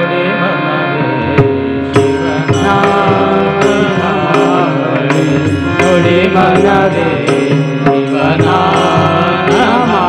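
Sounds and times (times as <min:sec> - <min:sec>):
man singing devotional song: 0:00.0 - 0:10.0
tabla drum strokes: 0:01.2 - 0:10.0.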